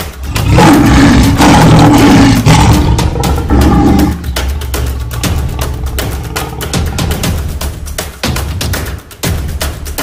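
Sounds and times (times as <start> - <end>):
intro music with steady beat: 0.0 - 10.0
loud drawn-out roar: 0.2 - 4.5.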